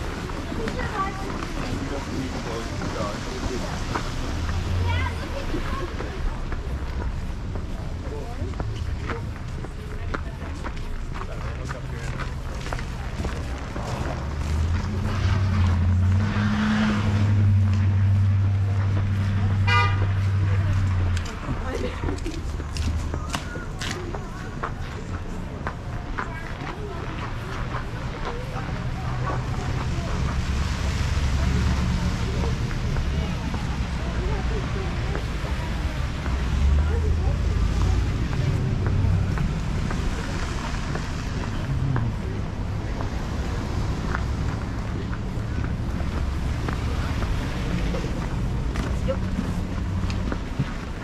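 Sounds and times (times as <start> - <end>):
faint voices of passersby: 0.0 - 51.0
vehicle engine humming: 0.0 - 51.0.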